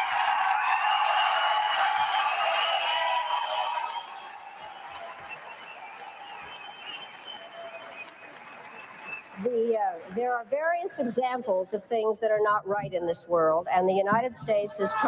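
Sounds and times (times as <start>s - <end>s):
large audience applauding: 0.0s - 10.2s.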